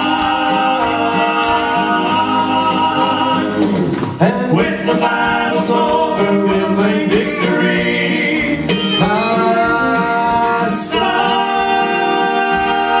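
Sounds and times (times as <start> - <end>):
male vocal trio singing harmony: 0.0 - 13.0.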